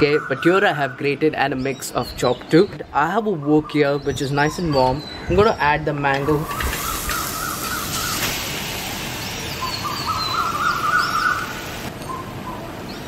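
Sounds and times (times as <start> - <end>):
birds warbling: 0.0 - 13.0
steady background hiss: 0.0 - 13.0.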